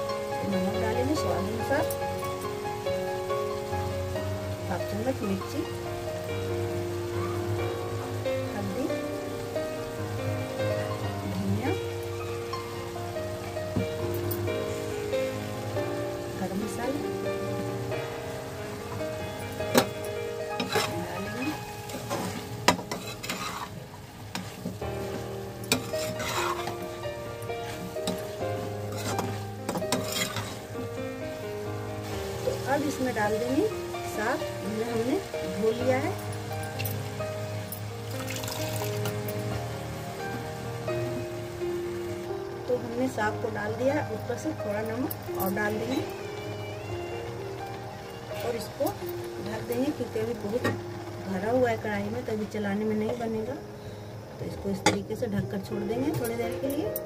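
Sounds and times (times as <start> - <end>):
vegetables sizzling in a pan: 0.0 - 57.0
spoon scraping metal pan: 20.6 - 24.8, 25.7 - 26.9, 27.6 - 30.7.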